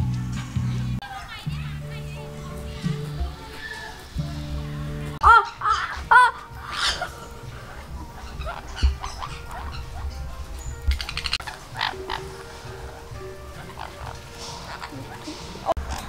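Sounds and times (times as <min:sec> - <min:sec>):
parrot squawk: 0:05.2 - 0:10.3, 0:10.9 - 0:16.0
harsh parrot chattering: 0:05.2 - 0:16.0.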